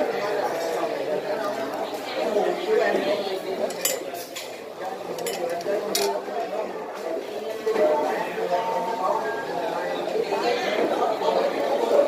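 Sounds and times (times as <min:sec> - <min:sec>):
diners chattering: 0:00.0 - 0:12.0
dishes and utensils clinking: 0:03.6 - 0:06.3.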